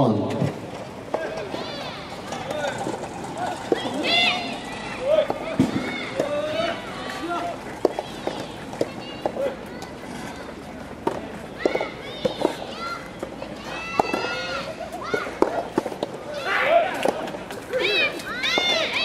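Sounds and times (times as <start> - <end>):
voices calling out and shouting: 0.0 - 19.0.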